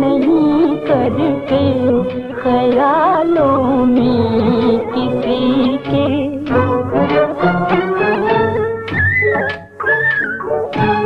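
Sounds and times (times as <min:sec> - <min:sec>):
film song band music: 0:00.0 - 0:11.0
high held clean notes: 0:00.0 - 0:11.0.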